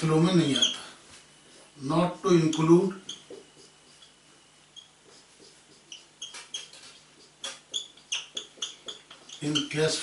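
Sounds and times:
marker squeaking on whiteboard: 0.4 - 10.0.

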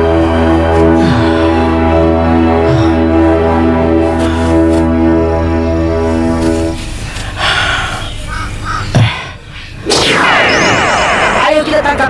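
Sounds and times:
bird cawing: 7.6 - 9.4
loud sweeping sound effect: 9.9 - 12.0.

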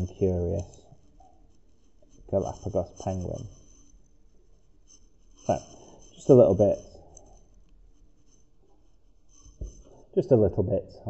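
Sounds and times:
pen scratching on paper: 0.5 - 10.0.

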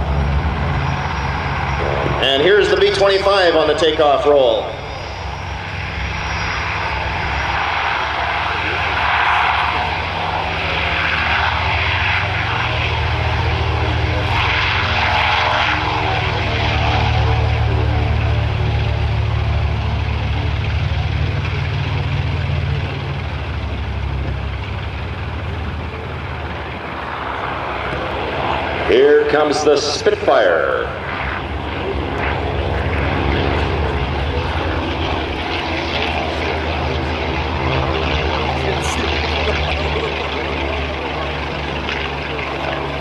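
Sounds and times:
aircraft engines deep drone: 0.0 - 43.0.

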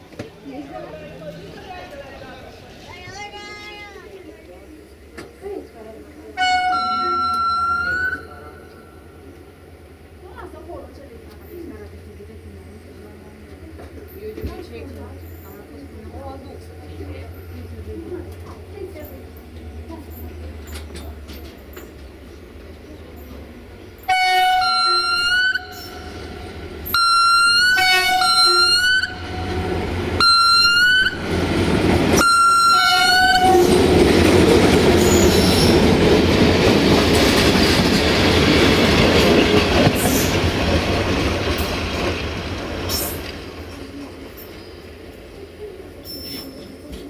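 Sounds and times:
train wheels rumbling on rails: 0.0 - 47.0
locomotive horn blasts: 6.4 - 9.0, 24.0 - 31.4, 32.2 - 33.8.

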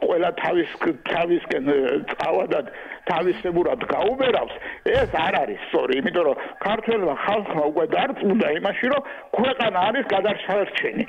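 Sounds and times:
person talking: 0.1 - 8.7.

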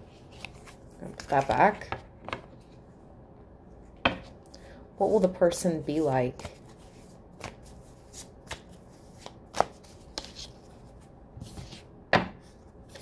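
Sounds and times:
cards being shuffled: 0.2 - 2.4, 6.3 - 11.8.

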